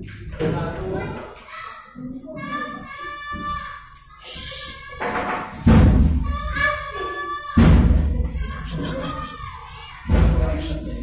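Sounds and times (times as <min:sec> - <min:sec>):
children's voices: 0:00.3 - 0:11.0.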